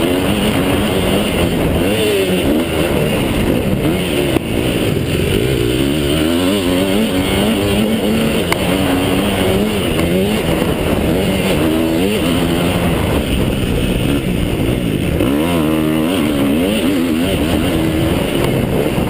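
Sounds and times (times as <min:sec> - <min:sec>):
motocross engine revving: 0:00.0 - 0:19.0.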